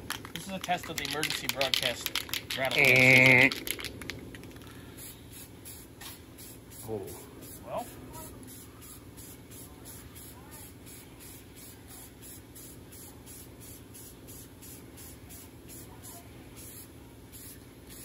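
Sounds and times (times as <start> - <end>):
spray paint can hissing: 0.0 - 18.0
steady low hum: 0.0 - 18.0.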